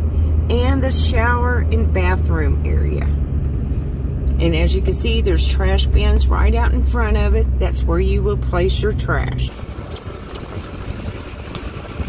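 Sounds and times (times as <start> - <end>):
car interior engine rumble: 0.0 - 12.0.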